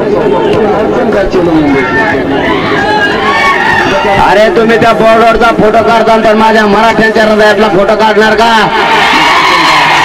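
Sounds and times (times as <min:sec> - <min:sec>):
man talking into a microphone: 0:00.0 - 0:02.2, 0:03.8 - 0:08.8
crowd chatter: 0:00.0 - 0:07.0.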